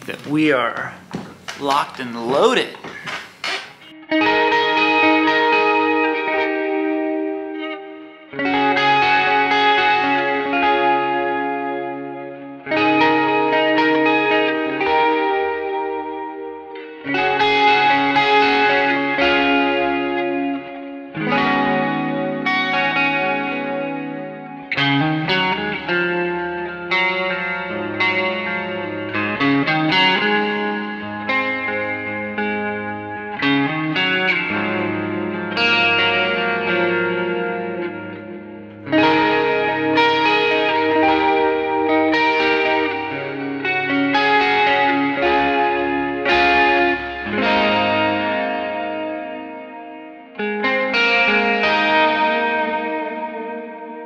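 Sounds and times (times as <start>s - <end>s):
electric guitar chords: 0.0s - 54.0s.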